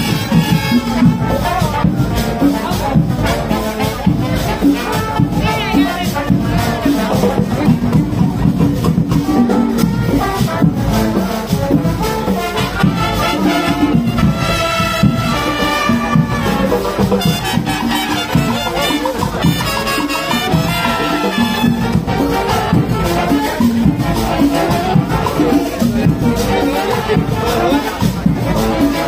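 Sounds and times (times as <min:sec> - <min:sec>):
marching band playing latin tune: 0:00.0 - 0:29.0.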